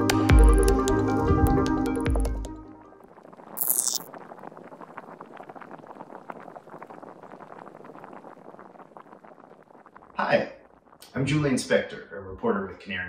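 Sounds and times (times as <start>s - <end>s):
pot simmering and bubbling: 3.0s - 11.8s.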